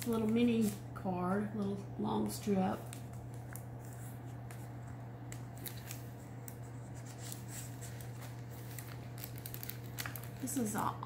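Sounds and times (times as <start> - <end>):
paper rustles and ticks: 0.0 - 0.8, 2.2 - 10.8
steady low hum: 0.0 - 11.0.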